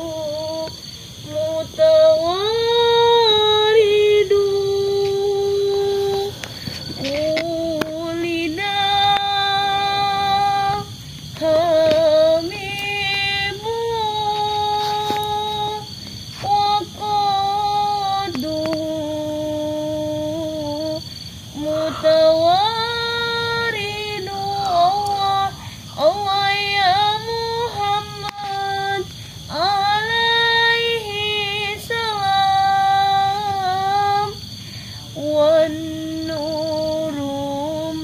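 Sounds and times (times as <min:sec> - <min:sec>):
woman singing long notes: 0:00.0 - 0:38.0.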